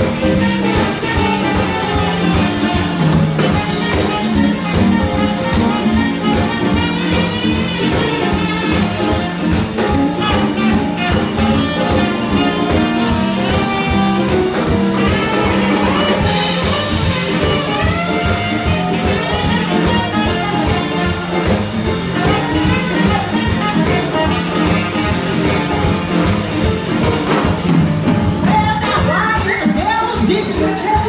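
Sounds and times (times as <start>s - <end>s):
tenor saxophone solo: 0.0s - 27.7s
blues band playing: 0.0s - 31.0s
steady drum beat: 0.0s - 31.0s.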